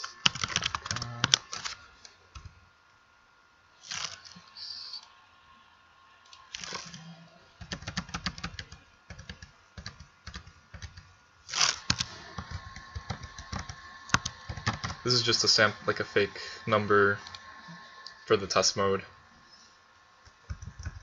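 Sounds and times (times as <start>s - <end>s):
computer keyboard typing: 0.0s - 1.8s, 7.6s - 11.1s, 11.8s - 15.0s, 20.5s - 21.0s.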